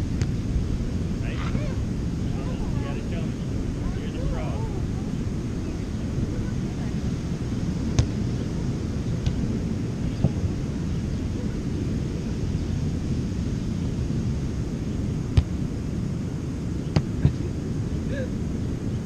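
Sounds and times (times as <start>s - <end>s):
wind on microphone: 0.0s - 19.0s.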